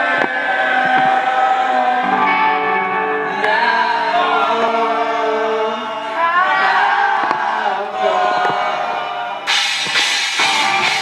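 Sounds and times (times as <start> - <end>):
person singing: 0.0 - 9.8
electric guitar chords: 0.0 - 11.0.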